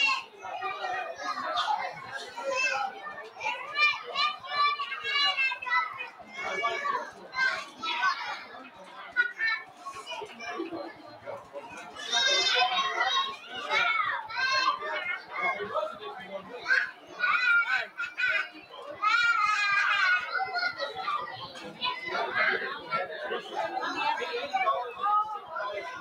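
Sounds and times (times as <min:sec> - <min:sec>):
children playing and calling out: 0:00.0 - 0:26.0.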